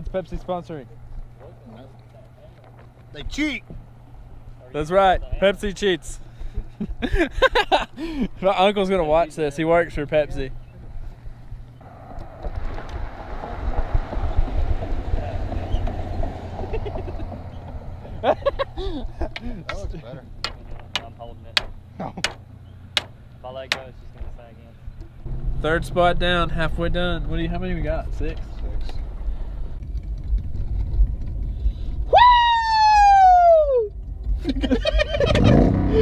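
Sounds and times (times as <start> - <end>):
low vehicle rumble: 0.0 - 36.0
road noise inside car: 11.4 - 18.8, 19.9 - 31.1.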